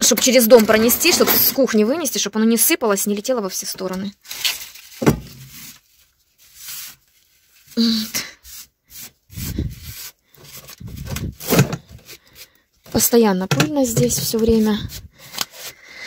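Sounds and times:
broom sweeping ash on concrete: 8.4s - 10.2s.

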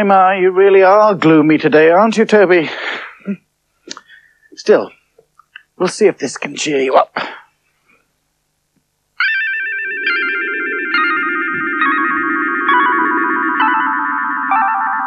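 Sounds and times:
low steady hum: 0.0s - 15.0s
shimmering magic-spell music: 9.2s - 15.0s.

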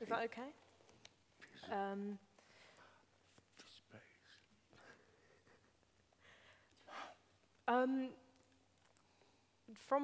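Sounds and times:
faint whispering: 2.7s - 5.6s.

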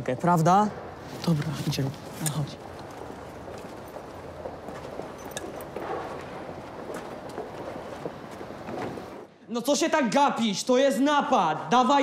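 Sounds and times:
street background noise: 0.0s - 12.0s
footsteps on pavement: 1.3s - 9.3s.

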